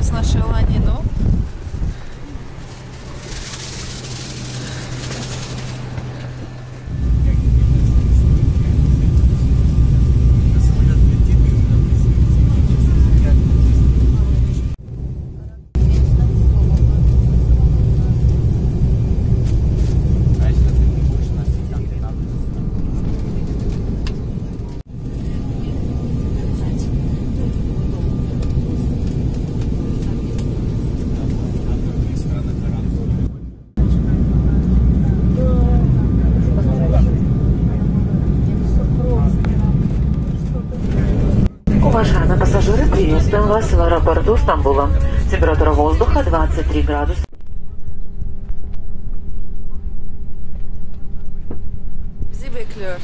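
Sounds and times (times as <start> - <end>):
jet cabin rumble: 0.0 - 53.0.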